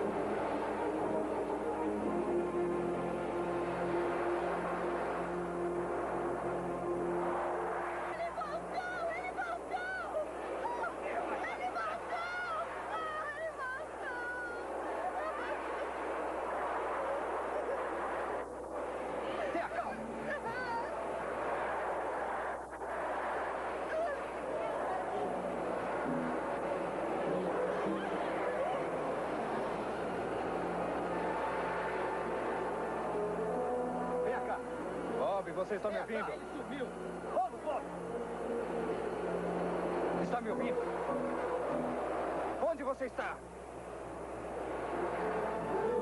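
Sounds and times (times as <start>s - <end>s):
dramatic film music: 0.0s - 14.0s, 24.4s - 43.0s
people screaming in panic: 11.6s - 15.9s.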